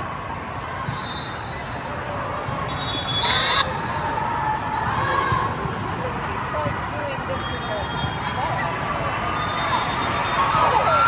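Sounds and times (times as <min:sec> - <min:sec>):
spectator chatter: 0:00.0 - 0:11.0
sneakers squeaking on court: 0:00.8 - 0:03.8, 0:09.3 - 0:10.6.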